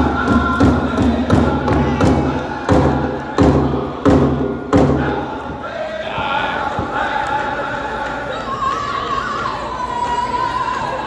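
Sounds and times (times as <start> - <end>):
heavy drum beat: 0.0 - 5.3
people singing: 0.0 - 11.0.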